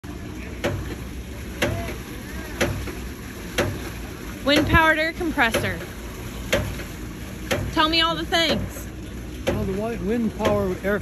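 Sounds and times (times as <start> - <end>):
water pump valve clacks: 0.0 - 11.0.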